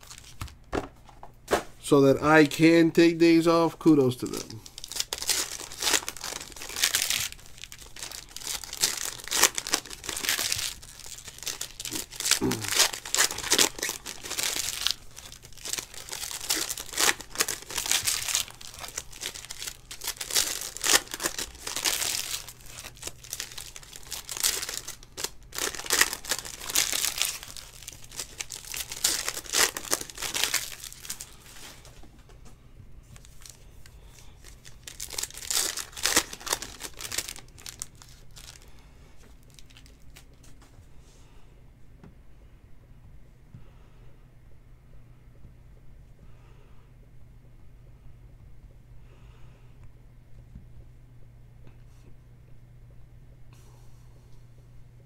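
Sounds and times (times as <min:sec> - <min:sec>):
foil wrappers tearing and crinkling: 0:00.0 - 0:00.6, 0:02.3 - 0:32.0, 0:33.1 - 0:40.6.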